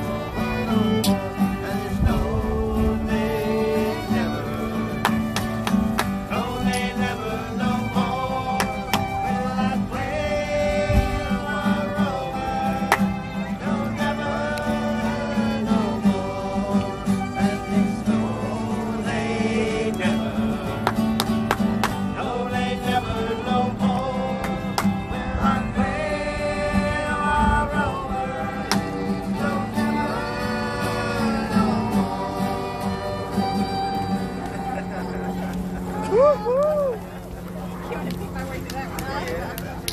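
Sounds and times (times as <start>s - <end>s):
fiddles playing: 0.0s - 21.5s, 27.9s - 38.4s
strummed acoustic guitar: 0.0s - 39.9s.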